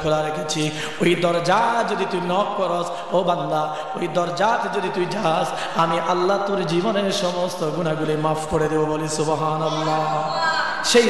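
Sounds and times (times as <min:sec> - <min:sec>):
man chanting a sermon: 0:00.0 - 0:11.0.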